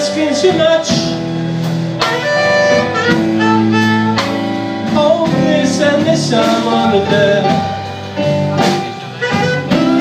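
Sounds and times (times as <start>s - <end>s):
live blues band playing: 0.0s - 10.0s.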